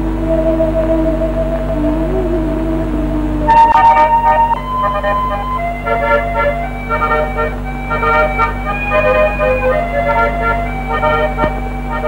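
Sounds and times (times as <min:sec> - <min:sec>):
organ-like held tones: 0:00.0 - 0:12.0
steady low hum: 0:00.0 - 0:12.0.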